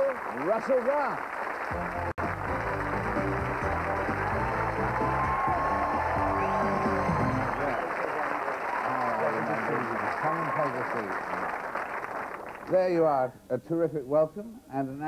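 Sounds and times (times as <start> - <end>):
studio audience applauding: 0.0 - 13.2
music: 1.7 - 7.9.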